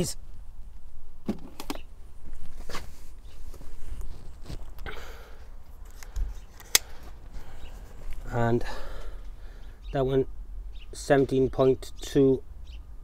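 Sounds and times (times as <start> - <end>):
rustle: 0.0 - 9.7.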